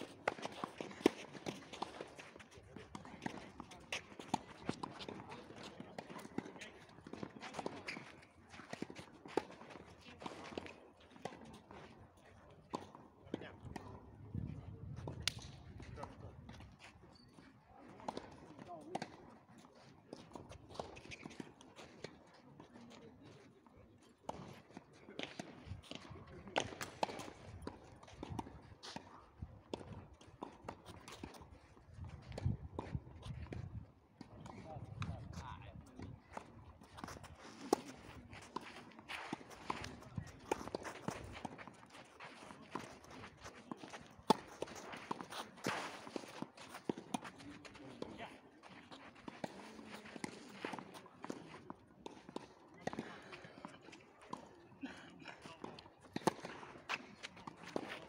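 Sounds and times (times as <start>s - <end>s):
footsteps on clay: 35.0s - 51.5s
shoes scuffing on clay: 35.2s - 51.7s
tennis balls struck by racquets: 35.9s - 48.2s.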